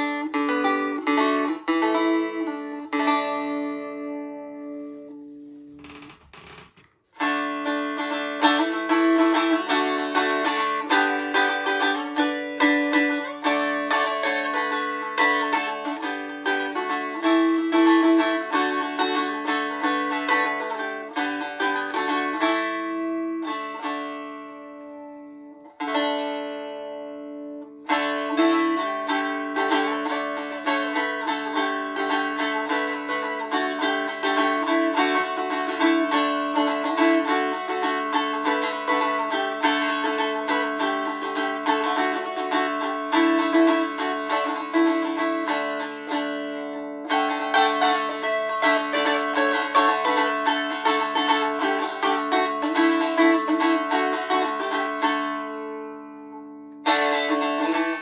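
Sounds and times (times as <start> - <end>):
stick dulcimer picked melody: 0.0 - 58.0.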